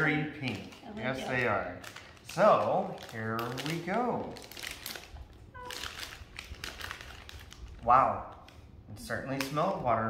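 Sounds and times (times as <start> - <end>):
plastic bag crinkling: 0.0 - 9.8.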